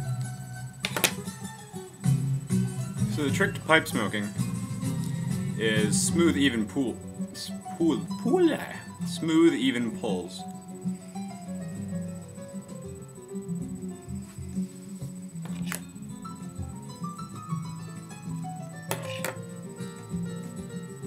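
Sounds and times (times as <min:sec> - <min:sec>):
flamenco acoustic guitar: 0:00.0 - 0:09.2, 0:10.2 - 0:21.0.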